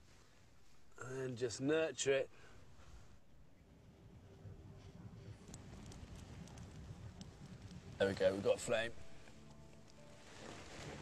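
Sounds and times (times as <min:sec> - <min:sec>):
faint crackles of burning tinder: 0:00.0 - 0:01.6, 0:02.3 - 0:11.0
tinder rustling: 0:02.7 - 0:11.0.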